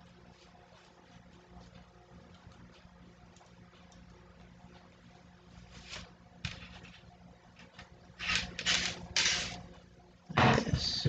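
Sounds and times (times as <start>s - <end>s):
hands rustling yarn on loom: 0.0s - 3.9s, 5.5s - 7.2s.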